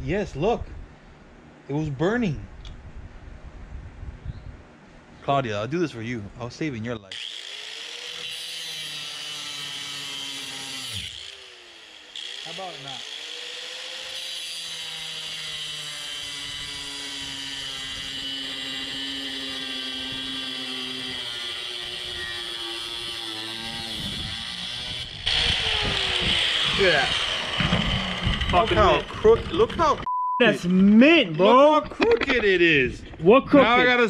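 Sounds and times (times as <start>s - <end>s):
angle grinder cutting metal: 7.1s - 30.1s.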